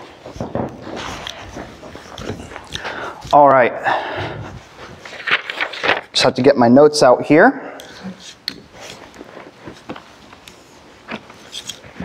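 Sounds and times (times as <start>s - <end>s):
footsteps: 0.0s - 5.5s
paper rustling: 4.6s - 6.2s, 8.2s - 12.0s.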